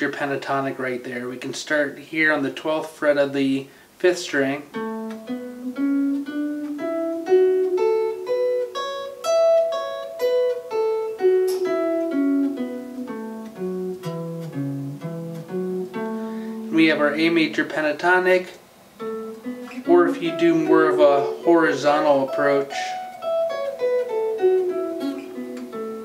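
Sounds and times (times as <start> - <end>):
electric guitar playing a scale: 4.6 - 18.4, 19.0 - 26.0.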